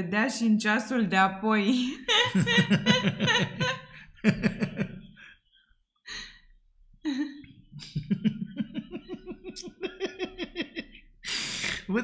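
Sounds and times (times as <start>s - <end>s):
man laughing: 2.1s - 5.2s, 7.8s - 11.0s.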